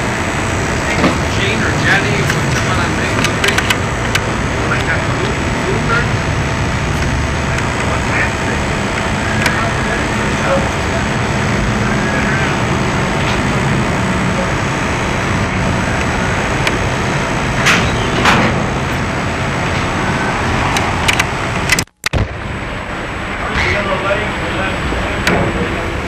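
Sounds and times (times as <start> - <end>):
tape hiss and rumble: 0.0 - 26.0.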